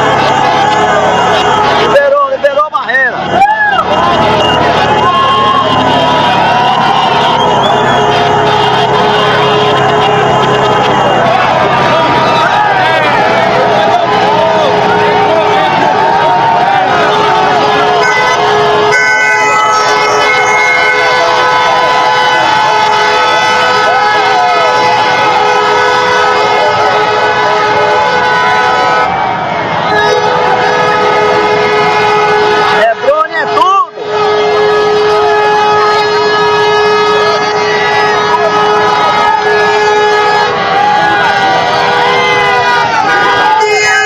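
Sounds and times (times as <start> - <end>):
crowd voices: 0.0 - 44.0
vehicle horns honking: 0.0 - 44.0.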